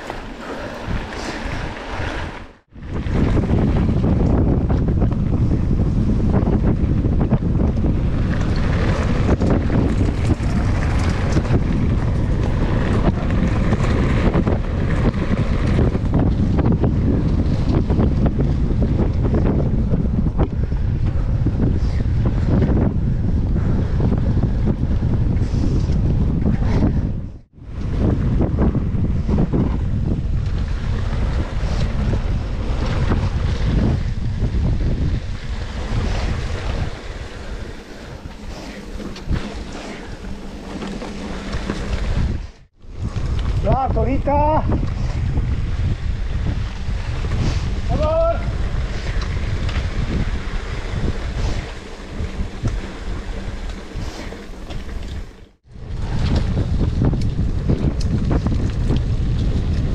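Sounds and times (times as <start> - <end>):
tyres on gravel trail: 0.0 - 22.9, 29.8 - 59.9
bike rattling: 0.0 - 59.9
wind buffeting microphone: 0.0 - 59.9.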